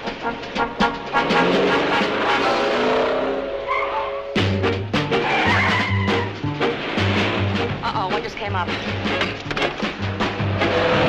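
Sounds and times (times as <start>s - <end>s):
car tyres squealing: 1.1s - 7.9s, 8.9s - 11.0s
background music with bass line: 4.4s - 11.0s.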